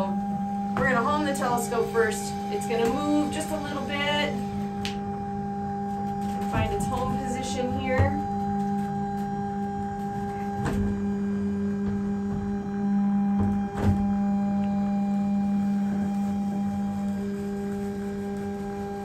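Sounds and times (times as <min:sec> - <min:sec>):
electric motor hum: 0:00.0 - 0:19.0.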